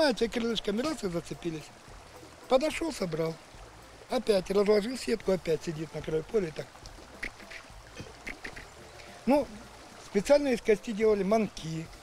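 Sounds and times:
river flowing over stones: 0.0 - 12.0.

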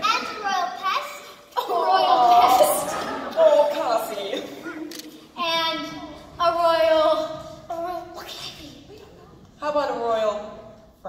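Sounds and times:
young voices exclaiming: 0.0 - 9.3.

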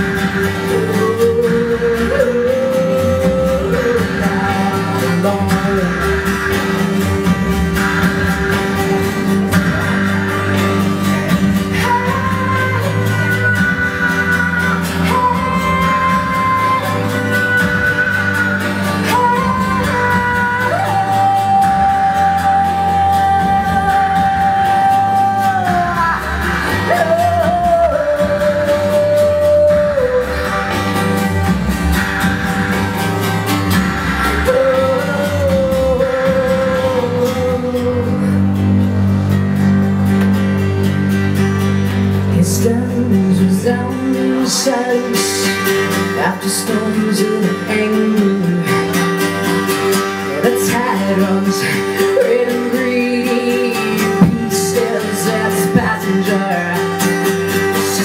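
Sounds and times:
guitar: 0.0 - 58.0
woman singing long notes: 11.5 - 31.2.

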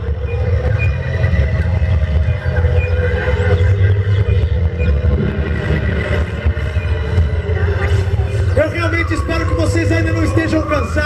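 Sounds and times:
deep rumble from sound system: 0.0 - 10.9.

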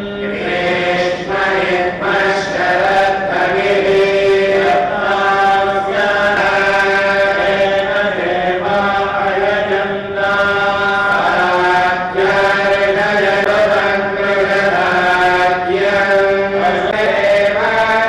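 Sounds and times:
mantras chanted in held notes: 0.0 - 18.0.

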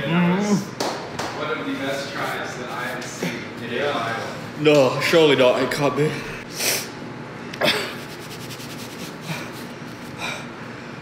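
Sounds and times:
paper napkin scrubbing face: 7.8 - 10.2.

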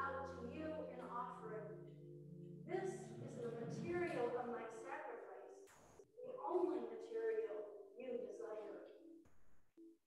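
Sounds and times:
woman reading aloud: 0.0 - 1.7, 2.7 - 5.6, 6.2 - 8.9.

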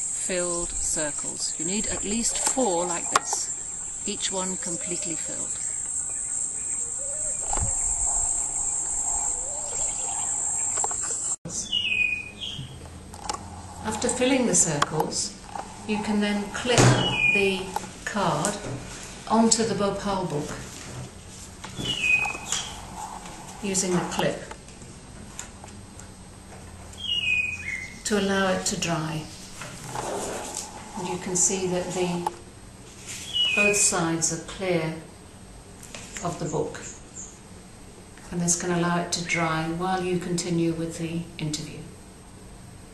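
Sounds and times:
high-pitched insect chorus: 0.0 - 11.4, 13.2 - 17.9, 21.7 - 24.6, 29.0 - 32.6
high whistling chirp: 4.6 - 12.8, 15.3 - 17.8, 21.8 - 24.2, 27.0 - 28.1, 33.2 - 33.8.

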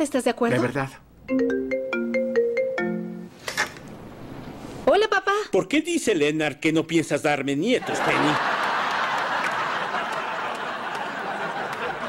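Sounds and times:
smartphone ringtone melody: 1.3 - 3.3.

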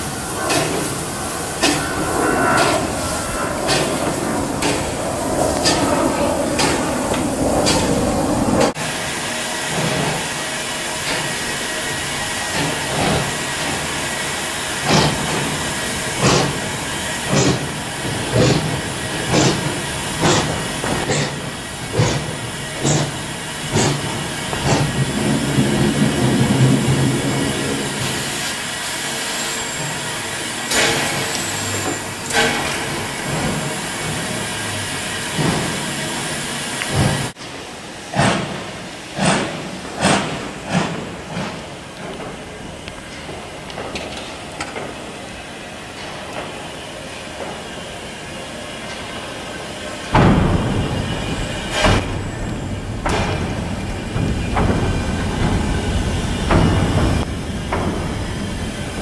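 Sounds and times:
steam hissing: 0.0 - 59.0
steam locomotive exhaust beats: 0.0 - 59.0.

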